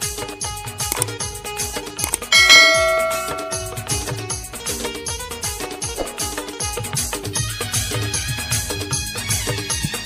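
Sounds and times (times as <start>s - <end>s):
bell chime: 2.3s - 4.3s.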